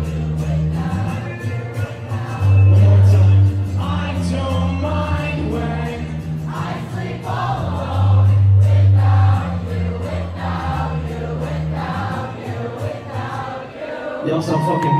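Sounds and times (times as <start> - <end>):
live concert music: 0.0 - 14.9.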